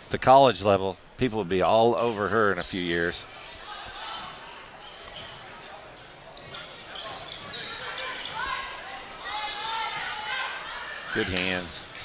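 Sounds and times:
footwork on hardwood court: 0:03.5 - 0:10.3
people calling out and cheering: 0:07.2 - 0:11.8.

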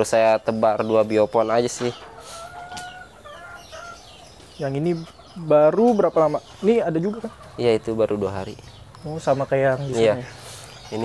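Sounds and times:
short chicken calls: 0:02.0 - 0:04.2.

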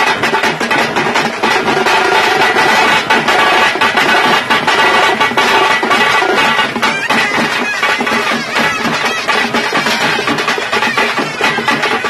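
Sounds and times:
frame drums and bass drums: 0:00.0 - 0:12.0.

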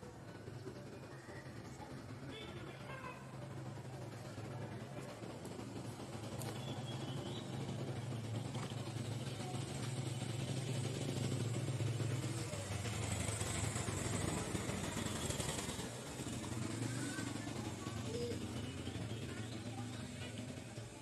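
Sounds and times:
motor engine running: 0:00.0 - 0:21.0.

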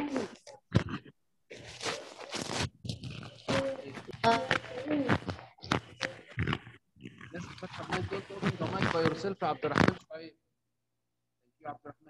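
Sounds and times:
person speaking over a call: 0:07.3 - 0:10.2.

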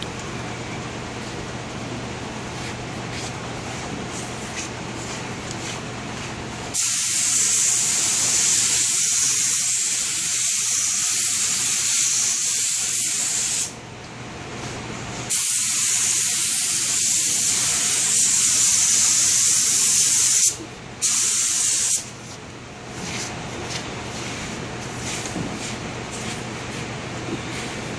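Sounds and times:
spray gun hissing: 0:06.7 - 0:13.7, 0:15.3 - 0:22.1.

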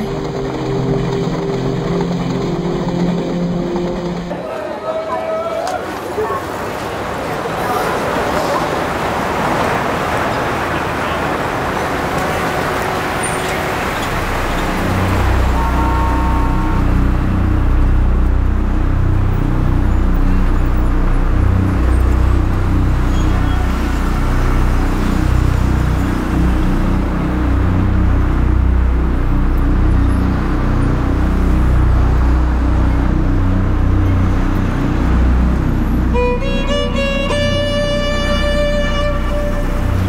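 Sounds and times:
vehicle engine low drone: 0:00.0 - 0:04.4, 0:08.7 - 0:40.0
road traffic noise: 0:00.0 - 0:40.0.

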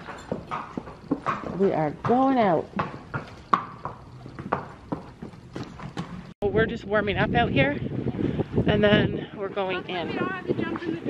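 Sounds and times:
horse hooves clip-clopping on concrete: 0:00.0 - 0:06.4, 0:09.1 - 0:11.0.

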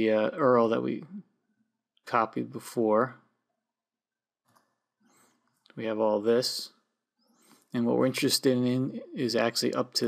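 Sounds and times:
man talking: 0:00.0 - 0:01.2, 0:02.1 - 0:03.2, 0:05.8 - 0:06.7, 0:07.7 - 0:10.0.

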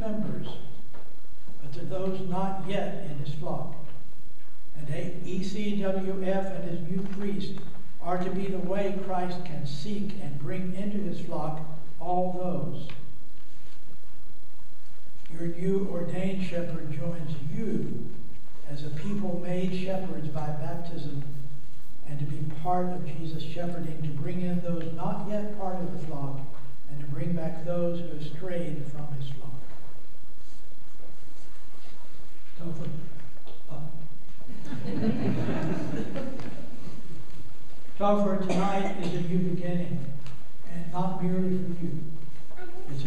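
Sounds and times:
man's voice: 0:01.6 - 0:03.8, 0:04.8 - 0:12.9, 0:38.0 - 0:42.1
congregation laughing: 0:34.5 - 0:36.8.

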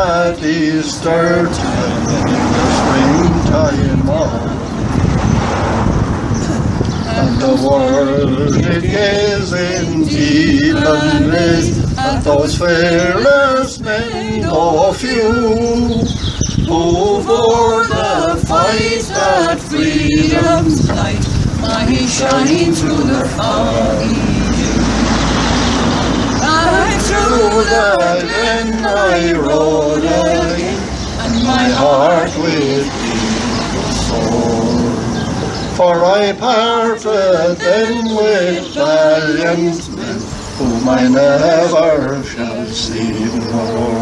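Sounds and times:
voices singing a ballad: 0:00.0 - 0:04.9, 0:06.4 - 0:44.0
road vehicle passing: 0:00.0 - 0:44.0
wind buffeting microphone: 0:00.0 - 0:44.0.

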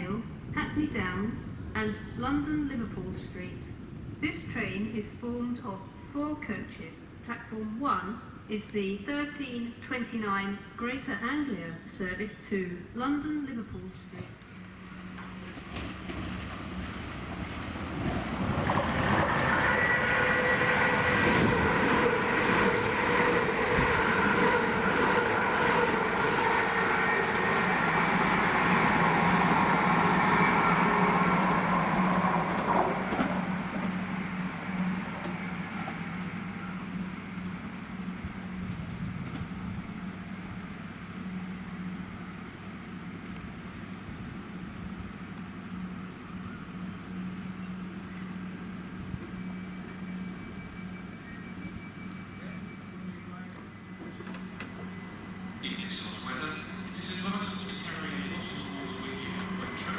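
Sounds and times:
train wheels on rail: 0:14.0 - 0:59.9
train motor whine: 0:14.4 - 0:59.9.

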